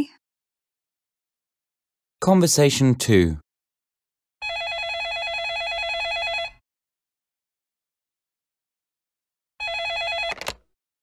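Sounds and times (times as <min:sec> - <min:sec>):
telephone warbling ring: 0:04.4 - 0:06.6, 0:09.6 - 0:10.5.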